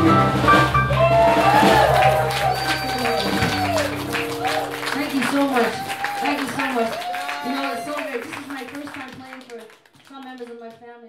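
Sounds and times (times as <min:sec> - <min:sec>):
live band with acoustic guitar: 0:00.0 - 0:09.2.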